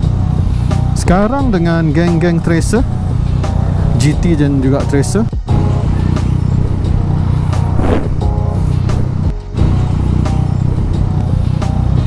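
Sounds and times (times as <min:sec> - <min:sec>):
music: 0:00.0 - 0:12.0
motorcycle engine idling: 0:01.5 - 0:12.0.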